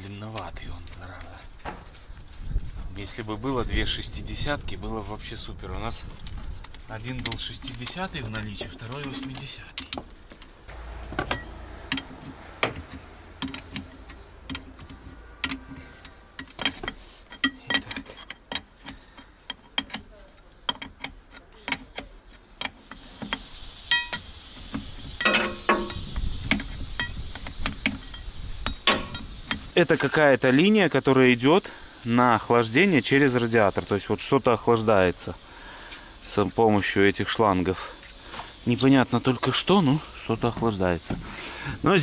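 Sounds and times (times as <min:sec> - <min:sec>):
metal hose fittings clinking: 0:04.8 - 0:42.0
hissing noise: 0:22.6 - 0:42.0.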